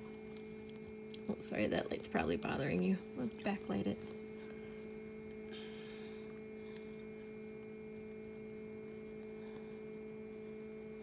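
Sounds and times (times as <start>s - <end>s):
fan motor humming: 0.0s - 11.0s.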